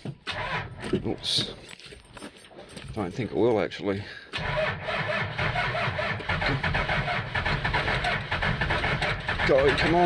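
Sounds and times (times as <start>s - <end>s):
starter motor cranking engine: 0.2s - 1.0s, 4.3s - 10.0s.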